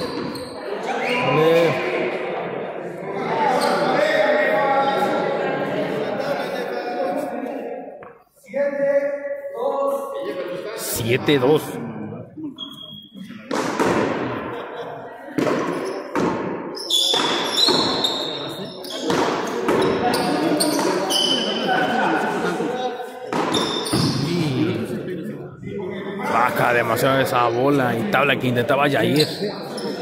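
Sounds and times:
ball hitting walls with echo: 13.4 - 14.5, 15.3 - 18.1, 18.9 - 21.1, 23.3 - 24.2.

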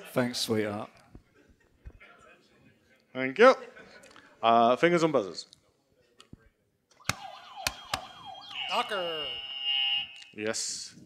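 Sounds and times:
warbling siren-style tone: 7.0 - 10.3
steady high beep: 8.2 - 10.4.

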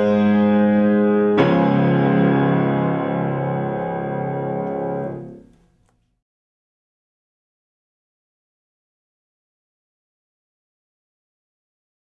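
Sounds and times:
piano playing slow chords: 0.0 - 5.6.

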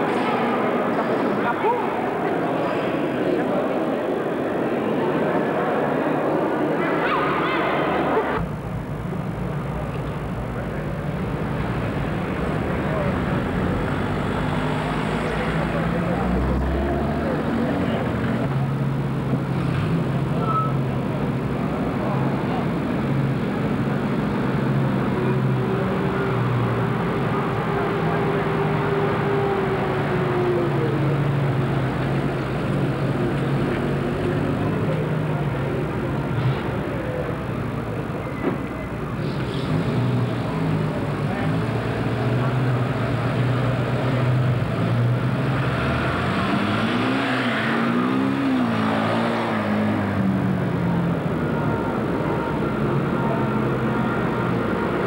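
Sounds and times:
voices: 0.0 - 55.0
truck engines running: 7.8 - 55.0.

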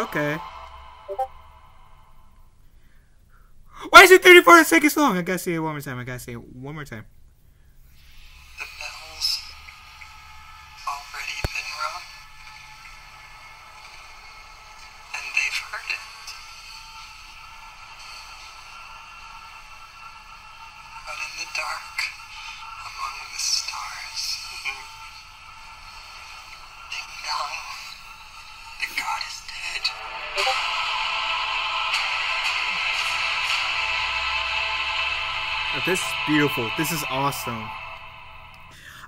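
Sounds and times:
loud hiss: 0.0 - 3.0, 7.9 - 39.0
film soundtrack through small speaker: 0.0 - 39.0.

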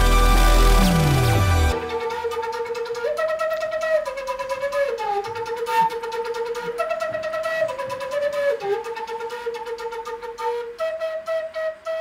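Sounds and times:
solo flute playing: 0.0 - 12.0.

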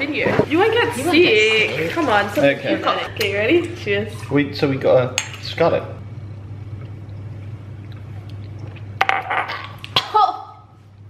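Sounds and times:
steady low hum: 0.0 - 11.0
people drinking and swallowing: 6.3 - 10.1.

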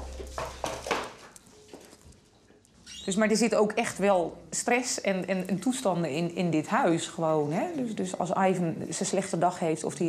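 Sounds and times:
loud knock: 0.0 - 1.1.

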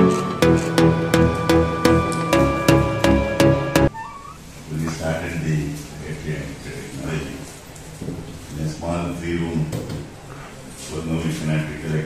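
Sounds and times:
short rising tone: 0.0 - 4.2
man speaking into a microphone: 10.9 - 12.0.

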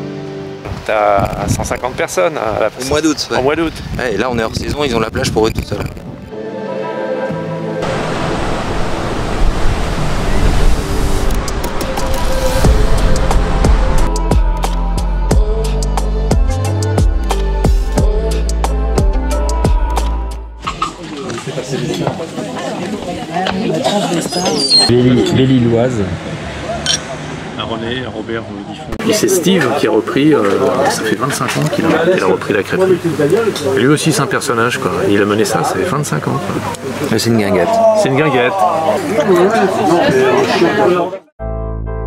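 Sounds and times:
people talking: 0.8 - 6.0, 20.7 - 26.3, 27.6 - 41.3
ocean surf breaking: 7.8 - 14.1
wine glasses clinking: 26.8 - 27.1.

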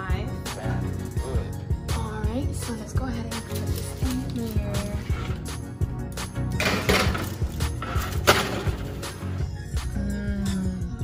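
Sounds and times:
background music: 0.0 - 11.0
baking sheet clattering on oven rack: 6.6 - 9.0.

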